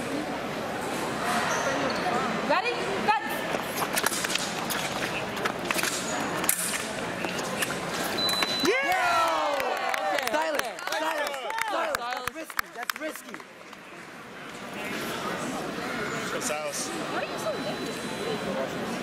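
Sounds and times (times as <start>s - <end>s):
footwork squeaking and slapping: 3.4s - 8.8s.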